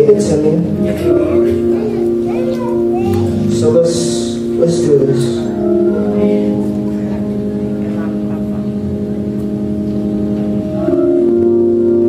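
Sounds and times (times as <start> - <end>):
electric organ chord: 0.0 - 12.0.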